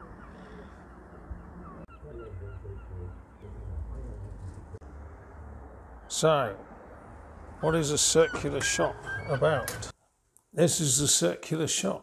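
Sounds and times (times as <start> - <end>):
birds crying: 0.0 - 4.0, 7.6 - 9.9
steady low rumble: 0.0 - 8.6.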